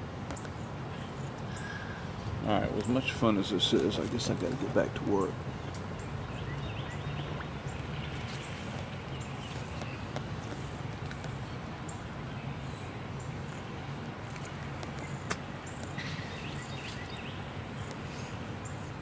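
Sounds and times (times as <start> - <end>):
low outdoor background hum: 0.0 - 19.0.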